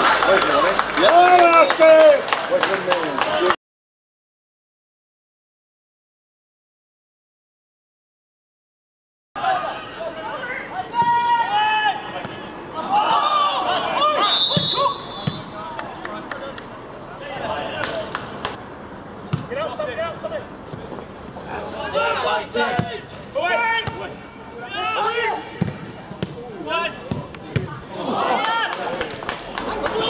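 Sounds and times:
football players shouting: 9.4 - 16.3, 19.5 - 30.0
ball being kicked: 14.5 - 15.5, 19.3 - 19.6.

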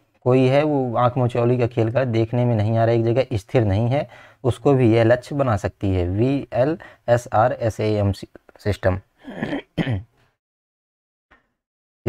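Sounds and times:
man clearing his throat: 9.2 - 10.1.

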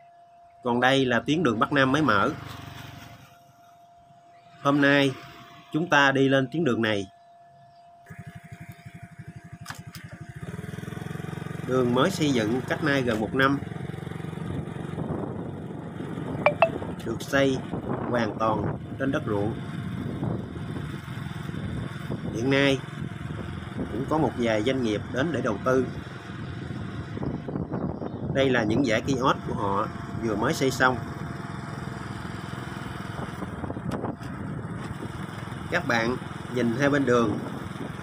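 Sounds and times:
road noise: 1.5 - 3.4, 8.1 - 18.0, 18.7 - 38.0
motorbike engine idling: 1.5 - 6.2, 7.4 - 18.0, 18.6 - 38.0.

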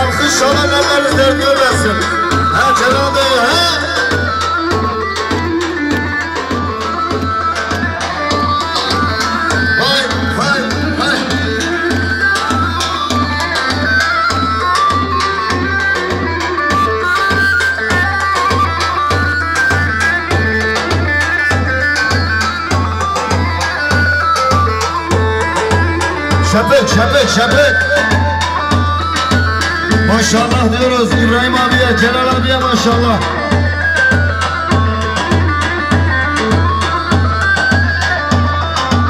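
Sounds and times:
driving drum beat: 0.0 - 39.0
ornamented melody line: 0.0 - 39.0
saz band over loudspeakers: 0.0 - 39.0.

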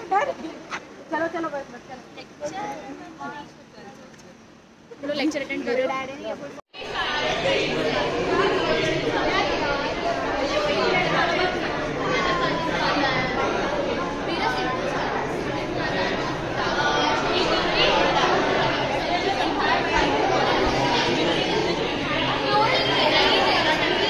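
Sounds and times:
students chattering: 0.0 - 24.0.

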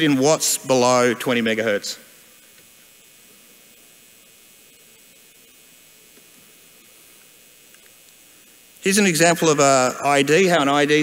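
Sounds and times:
faint hiss with low hum: 0.0 - 11.0.

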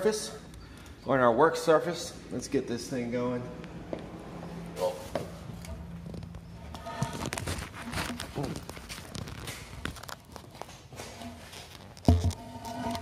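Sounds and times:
wooden post knocking and scraping: 6.0 - 9.4, 11.1 - 13.0.

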